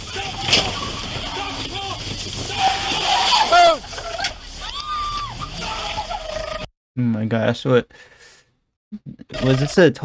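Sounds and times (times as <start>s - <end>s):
distant people shouting: 0.0s - 3.9s.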